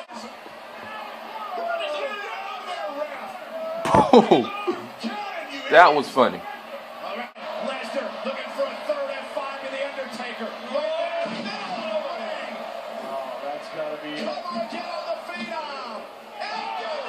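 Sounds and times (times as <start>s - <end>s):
arena crowd noise: 0.0s - 17.0s.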